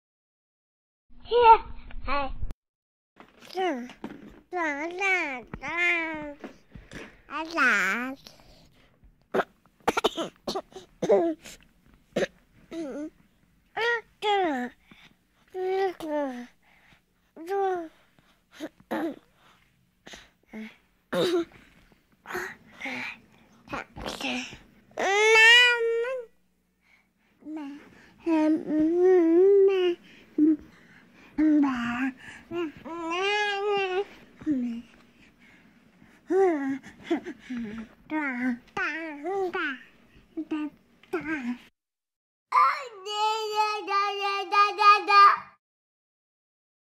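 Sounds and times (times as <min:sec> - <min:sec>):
child-like voice cooing baby talk: 0:04.6 - 0:06.4, 0:23.7 - 0:26.3, 0:31.4 - 0:34.9, 0:36.3 - 0:41.6, 0:42.5 - 0:45.6.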